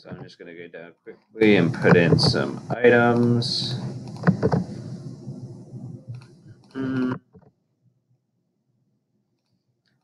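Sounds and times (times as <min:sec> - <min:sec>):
short hummed voice: 0:06.8 - 0:07.2.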